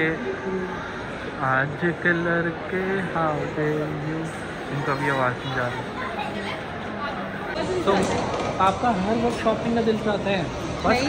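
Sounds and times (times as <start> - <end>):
crowd chatter indoors: 0.0 - 11.0.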